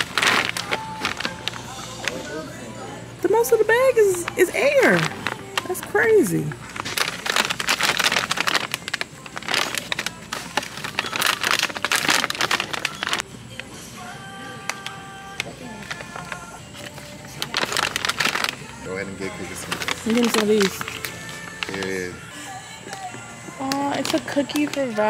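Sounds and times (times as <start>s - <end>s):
plastic packaging crinkling: 0.0s - 2.4s, 3.4s - 13.3s, 14.6s - 22.2s, 23.6s - 25.0s
background music: 0.0s - 25.0s.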